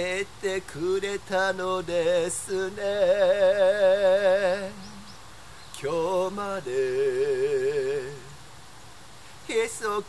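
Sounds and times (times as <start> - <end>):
man singing pop ballad: 0.0 - 5.1, 5.7 - 8.4, 9.4 - 10.0.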